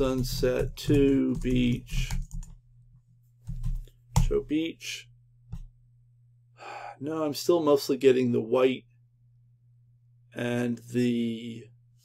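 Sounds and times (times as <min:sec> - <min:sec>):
man speaking: 0:00.0 - 0:02.2, 0:04.2 - 0:05.1, 0:06.7 - 0:08.9, 0:10.3 - 0:11.7
low electrical hum: 0:00.0 - 0:12.0.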